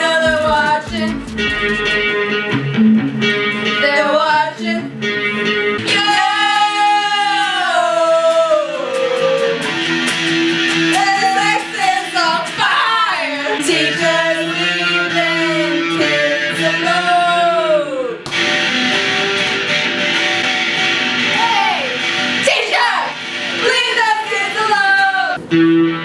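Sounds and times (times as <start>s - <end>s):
person singing: 0.0s - 1.9s, 5.8s - 9.7s, 10.9s - 18.2s
guitar accompaniment: 0.0s - 26.0s.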